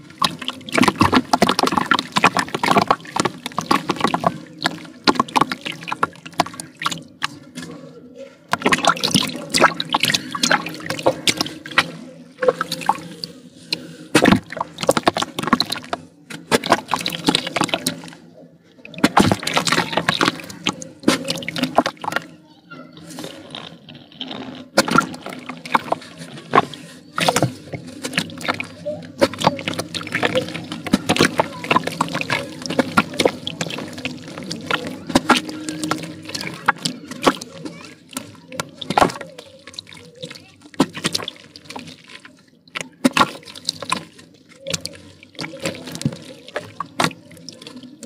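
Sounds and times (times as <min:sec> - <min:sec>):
crumbs splashing into muddy water: 0:00.0 - 0:07.6, 0:08.5 - 0:18.2, 0:18.9 - 0:22.3, 0:24.7 - 0:48.0.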